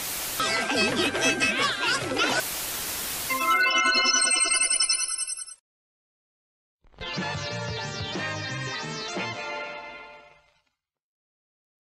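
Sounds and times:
tv static hiss: 0.0s - 4.3s
electronic jingle: 3.3s - 5.6s.

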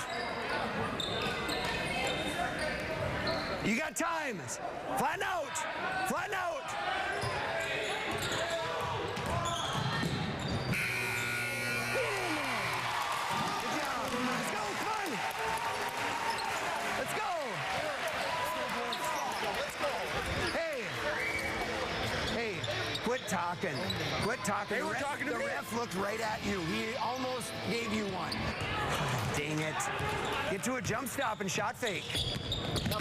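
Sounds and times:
gym crowd noise: 0.0s - 33.0s
sneakers squeaking on hardwood: 7.2s - 11.3s, 31.9s - 33.0s
scoreboard buzzer: 10.7s - 12.9s.

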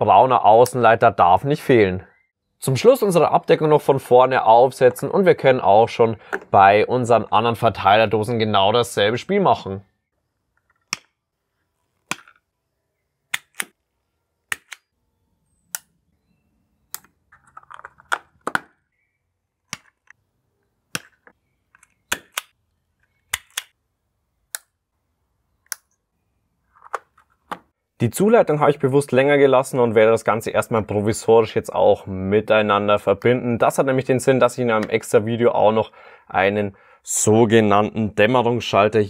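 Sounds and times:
plastic clicks and snaps: 10.6s - 11.2s, 13.3s - 13.8s, 14.5s - 14.9s, 19.7s - 20.2s, 20.9s - 23.7s, 25.6s - 26.0s.

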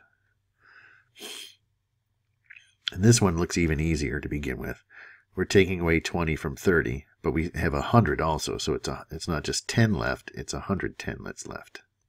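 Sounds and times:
faint breath: 0.0s - 1.6s, 4.9s - 5.4s
short breathy burst: 0.6s - 1.6s
man speaking: 2.9s - 4.8s, 5.4s - 11.8s.

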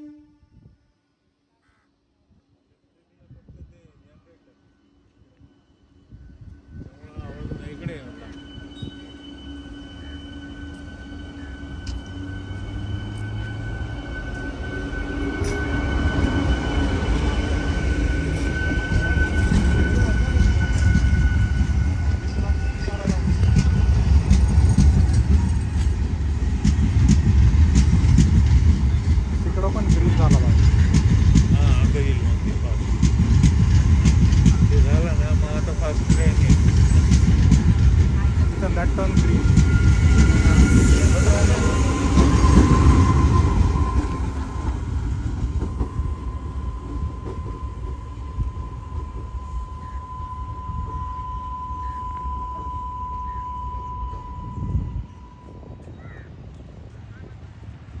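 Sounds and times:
train high whine: 0.0s - 58.0s
train wheels rumbling on rails: 6.5s - 53.4s.

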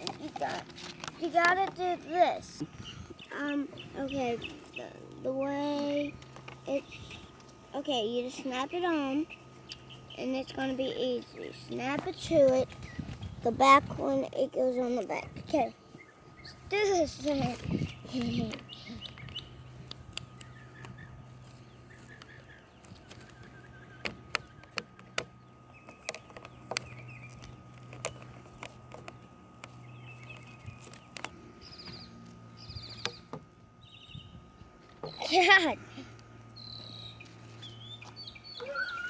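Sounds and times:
birds chirping: 0.0s - 39.0s.

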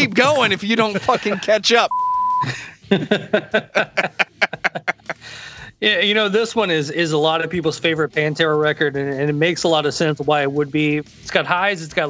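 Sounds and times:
men laughing: 0.0s - 5.5s
electronic beep tone: 1.9s - 2.5s.

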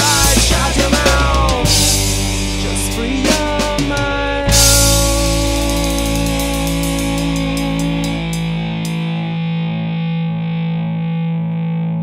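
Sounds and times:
deep bass: 0.0s - 12.0s
distorted electric guitar chord: 0.0s - 12.0s.

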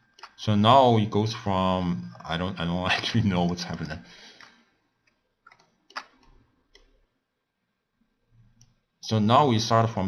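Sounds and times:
computer mouse clicks: 0.0s - 0.4s, 4.3s - 7.0s, 8.4s - 8.8s.

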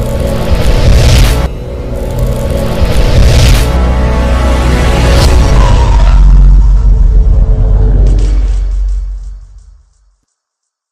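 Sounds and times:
deep cinematic rumble: 4.7s - 10.2s.

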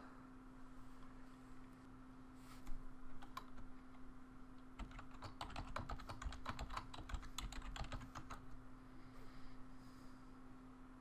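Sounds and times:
keyboard typing: 3.2s - 3.6s, 4.7s - 8.5s.

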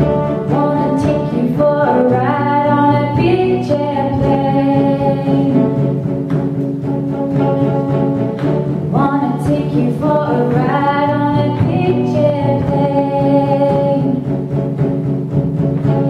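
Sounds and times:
women singing in harmony: 0.0s - 5.9s, 8.9s - 14.3s
acoustic guitar: 0.0s - 16.0s.

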